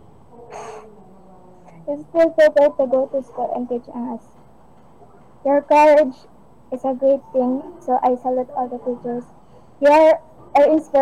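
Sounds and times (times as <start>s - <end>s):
person's sharp intake of breath: 0.5s - 0.9s
person reading aloud: 5.4s - 9.2s, 9.8s - 11.0s.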